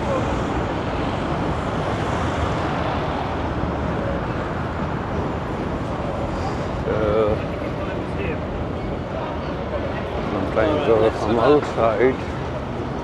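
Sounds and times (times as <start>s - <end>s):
passing cars rumble and hiss: 0.0s - 13.0s.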